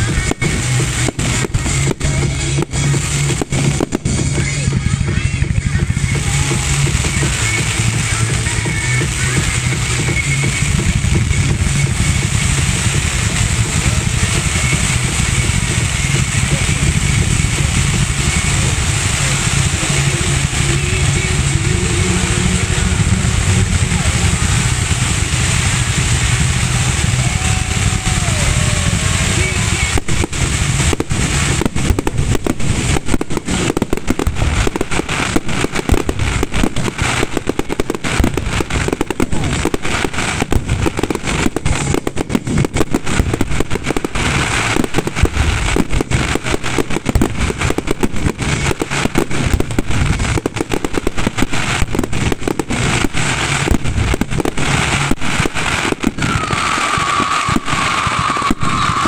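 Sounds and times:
fireworks bangs: 0.0s - 59.0s
fireworks crackling: 0.0s - 59.0s
fireworks launching and bursting: 0.0s - 59.0s.

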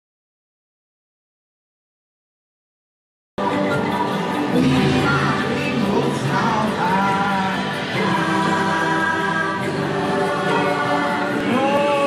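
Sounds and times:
choral singing in held notes: 3.4s - 12.0s.

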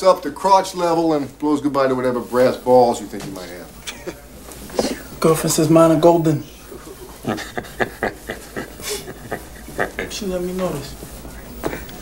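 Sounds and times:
people laughing in breathy bursts: 6.7s - 10.3s.

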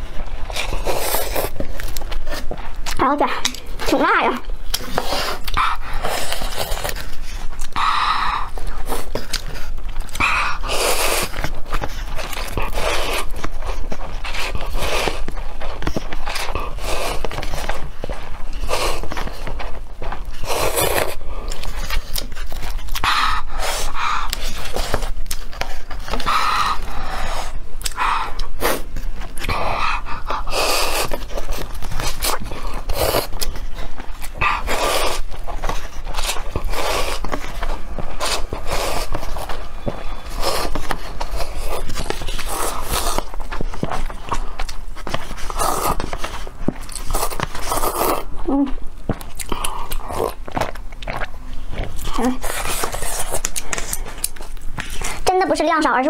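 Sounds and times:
noodles being slurped: 0.0s - 56.0s
wet chewing: 0.0s - 56.0s.

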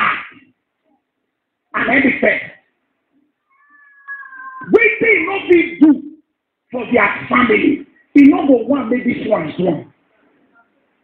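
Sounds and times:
man's amplified voice: 1.7s - 2.7s, 4.6s - 10.0s
high-pitched cat-like cry: 3.5s - 4.7s.

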